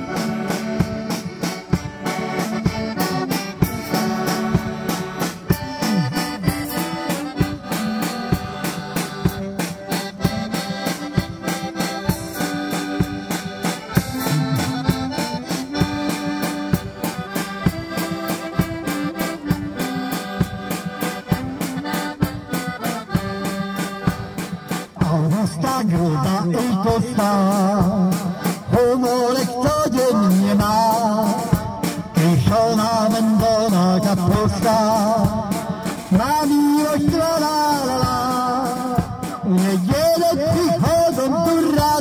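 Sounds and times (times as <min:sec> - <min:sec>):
accordions: 0:00.0 - 0:42.0
drum kit steady beat: 0:00.0 - 0:42.0.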